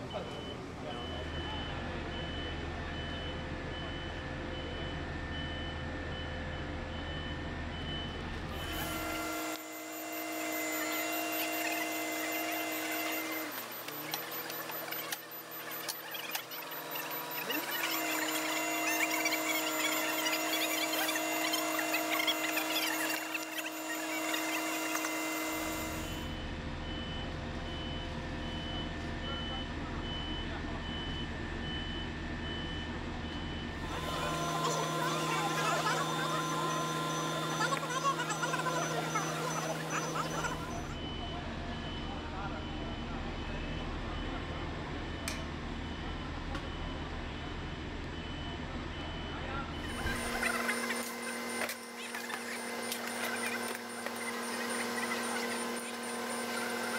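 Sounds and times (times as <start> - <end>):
vehicle machinery running: 0.0 - 29.5, 33.2 - 56.9
vehicle warning beeper: 0.0 - 56.9.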